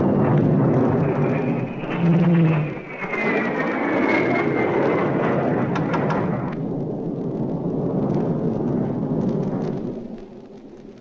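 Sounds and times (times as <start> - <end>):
airliner engines with high whine: 0.0 - 11.0.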